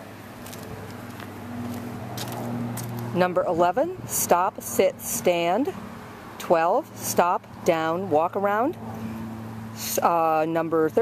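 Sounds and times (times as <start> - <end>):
footsteps on plastic matting: 0.4 - 3.1.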